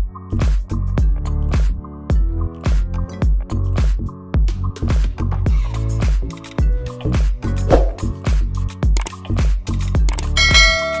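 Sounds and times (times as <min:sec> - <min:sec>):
upbeat music with steady beat: 0:02.8 - 0:11.0
ringing bell chime: 0:10.4 - 0:11.0.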